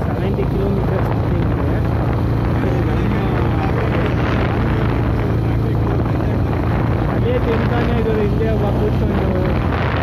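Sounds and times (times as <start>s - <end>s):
motorcycle engine running: 0.0s - 10.0s
wind rushing over microphone: 0.0s - 10.0s.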